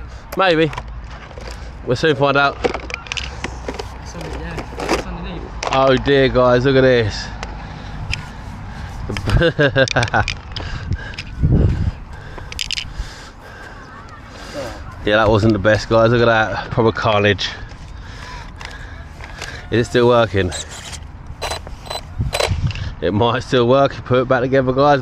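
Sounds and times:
man laughing: 9.1s - 10.3s, 13.5s - 15.1s
rc truck motor whirring: 20.1s - 22.6s.

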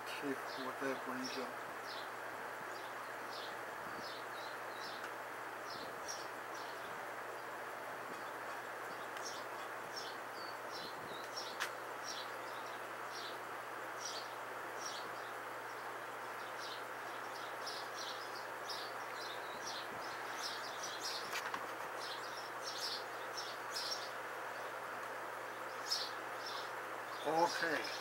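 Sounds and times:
background hiss: 0.0s - 28.0s.

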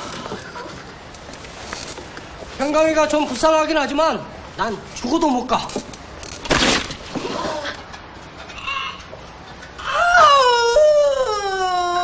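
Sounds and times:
woman wailing: 9.8s - 12.0s.

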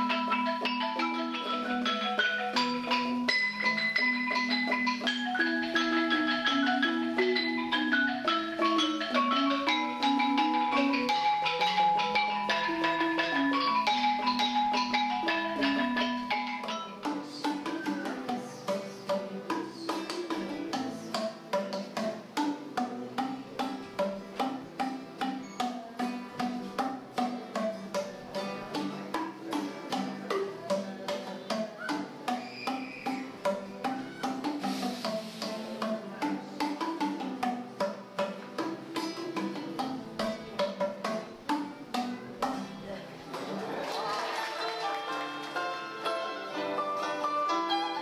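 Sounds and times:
bamboo xylophone playing: 0.0s - 48.0s
applause: 43.5s - 45.7s.

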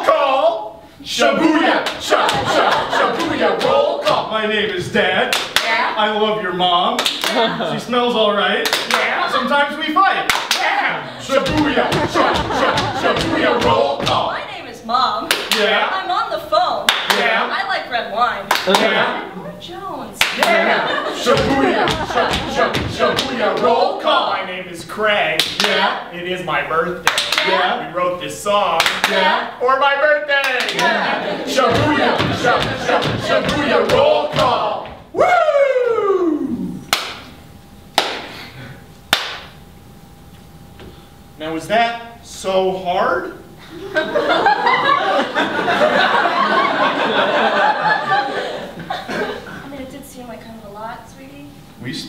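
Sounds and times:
call-and-response chanting voices: 1.0s - 17.7s, 18.5s - 24.7s, 25.3s - 29.8s, 30.4s - 35.2s
sharp hand claps: 5.3s - 5.8s, 7.0s - 7.5s, 8.6s - 9.2s, 10.3s - 10.7s, 15.3s - 15.8s, 16.9s - 17.4s, 20.2s - 20.6s, 25.4s - 25.8s, 27.0s - 27.6s, 28.8s - 29.3s, 36.9s - 37.3s, 38.0s - 38.3s, 39.1s - 39.6s.

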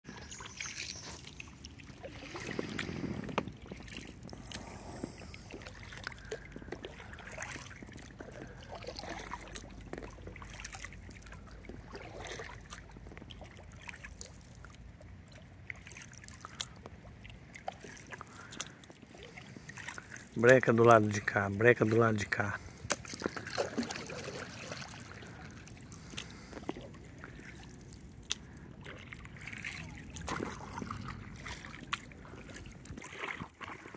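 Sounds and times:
paddle strokes in water: 0.1s - 33.9s
water dripping off paddle: 0.1s - 33.9s.

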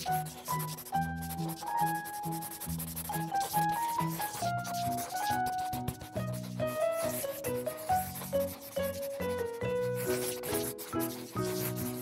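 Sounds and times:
marker pen rubbing on paper: 0.0s - 12.0s.

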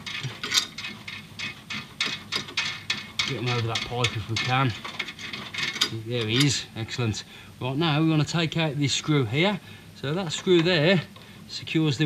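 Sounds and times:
metal nut clicking and rattling: 0.0s - 6.6s.

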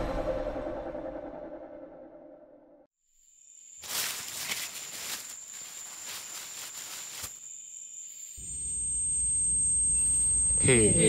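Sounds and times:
crickets chirping: 3.0s - 11.0s
footsteps crunching dry leaves: 3.8s - 7.4s.

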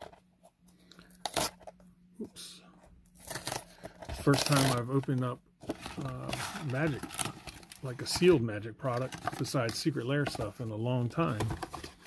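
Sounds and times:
foil packs crinkling: 3.1s - 12.0s.

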